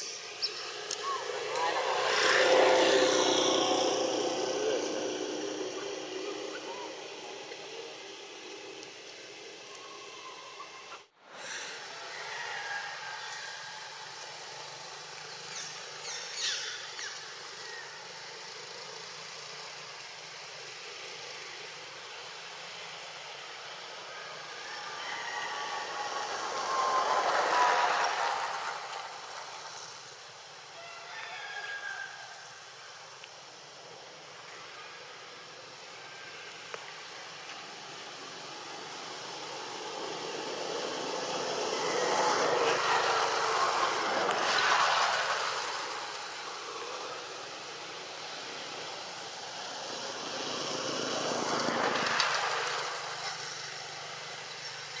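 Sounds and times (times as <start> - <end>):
motor vehicles passing by: 0.0 - 10.2, 10.9 - 55.0
steady outdoor hiss: 0.0 - 55.0.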